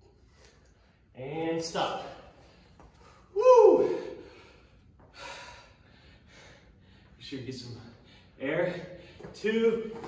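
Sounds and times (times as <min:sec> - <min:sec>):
man breathing hard: 0:02.4 - 0:07.2.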